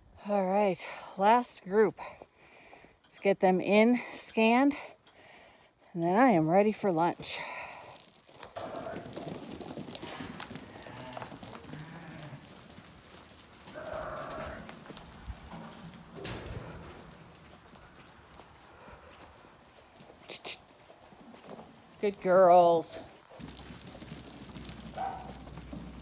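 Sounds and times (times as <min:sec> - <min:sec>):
sheep hooves on dirt floor: 0:06.6 - 0:26.0
sheep bleat: 0:10.6 - 0:12.6, 0:13.7 - 0:14.8.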